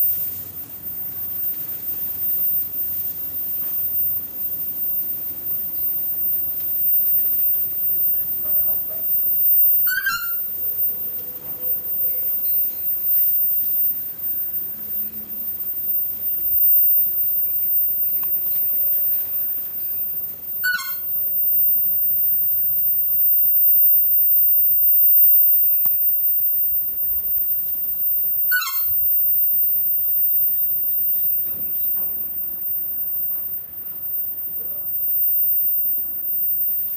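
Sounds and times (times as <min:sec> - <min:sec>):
bird giving harsh call: 0:09.8 - 0:10.5, 0:20.6 - 0:21.1, 0:28.5 - 0:28.9.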